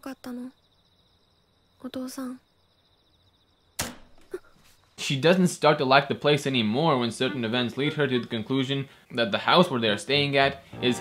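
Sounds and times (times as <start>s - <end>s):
girl speaking softly: 0.0s - 0.6s, 1.8s - 2.5s
sudden sharp crack: 3.8s - 4.3s.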